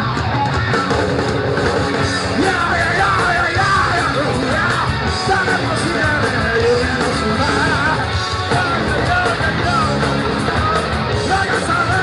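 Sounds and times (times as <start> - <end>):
hardcore punk band playing live: 0.0 - 12.0.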